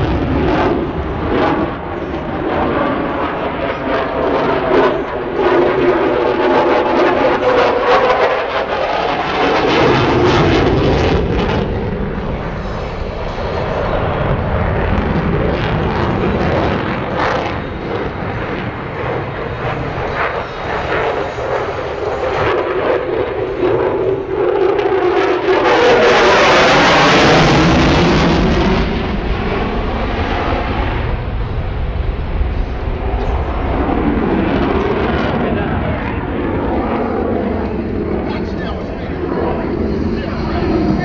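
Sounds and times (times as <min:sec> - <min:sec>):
fighter jet engine roar: 0:00.0 - 0:41.0.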